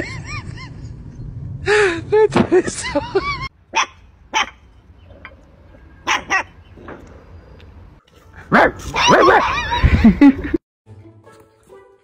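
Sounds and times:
puppies barking: 0:03.7 - 0:05.3, 0:06.0 - 0:06.7, 0:08.4 - 0:09.8.

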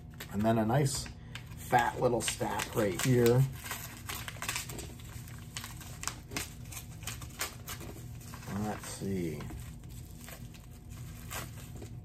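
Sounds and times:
light rustling of wrapping: 0:01.3 - 0:12.0.

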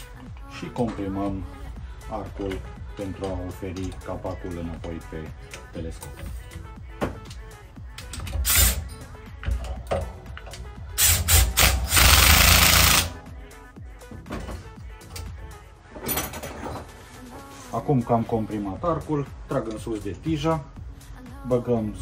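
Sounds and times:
cordless drill bursts: 0:11.0 - 0:13.2.

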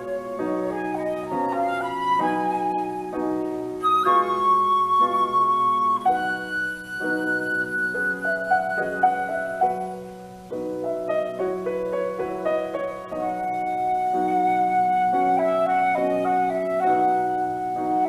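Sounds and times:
flute melody: 0:00.0 - 0:18.0
soft piano chords: 0:00.0 - 0:18.0.

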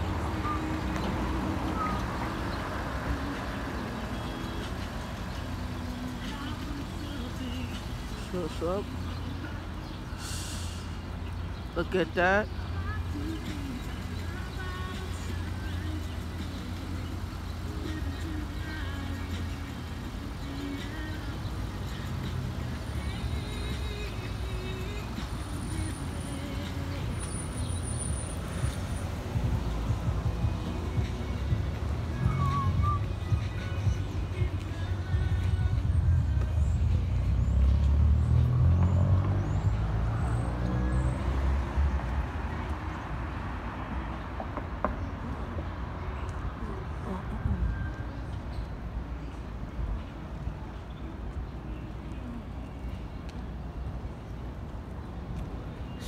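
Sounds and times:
traffic engine rumble: 0:00.0 - 0:56.0
vehicle passing by: 0:36.0 - 0:44.0.

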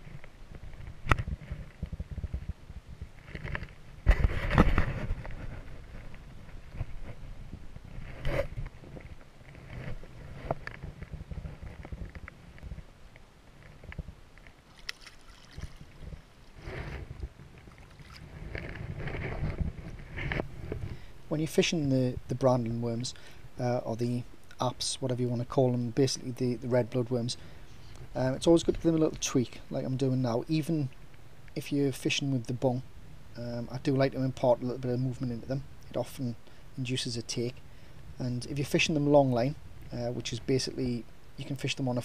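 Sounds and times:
wind rumbling on microphone: 0:00.0 - 0:14.7, 0:15.4 - 0:21.3
splashing water: 0:14.7 - 0:16.3, 0:17.7 - 0:18.2.

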